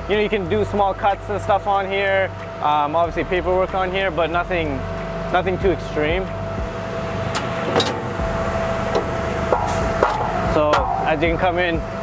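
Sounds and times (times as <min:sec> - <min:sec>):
steady low hum: 0:00.0 - 0:12.0
latch and drawer clicks and knocks: 0:07.4 - 0:08.0
drawer sliding metallic rattle: 0:07.4 - 0:08.1.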